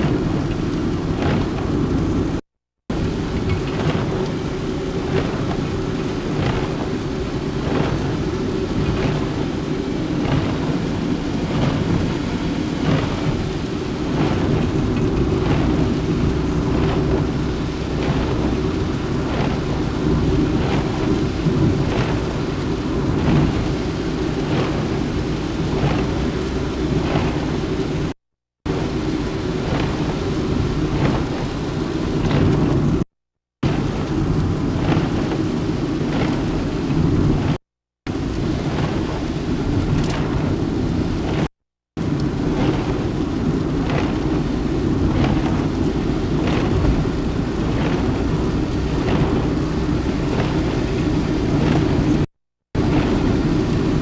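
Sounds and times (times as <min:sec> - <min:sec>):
wipers sweeping: 0:00.0 - 0:28.2, 0:42.1 - 0:52.2
car cabin road rumble: 0:00.0 - 0:54.0
rain hitting windshield: 0:00.0 - 0:54.0.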